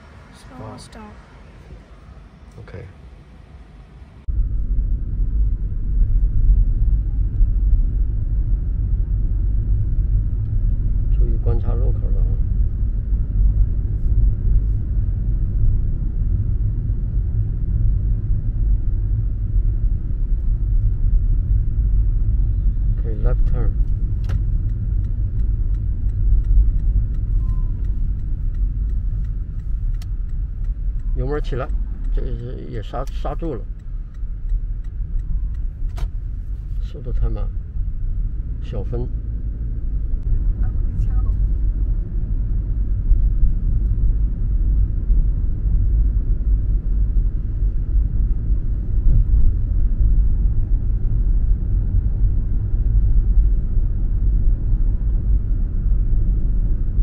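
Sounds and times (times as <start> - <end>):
road and engine rumble in car: 0.0 - 57.0.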